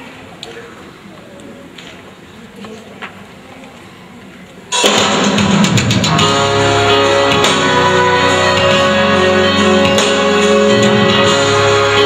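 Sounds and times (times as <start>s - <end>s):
faint audience murmur: 0.0s - 4.8s
hall room noise: 0.0s - 12.0s.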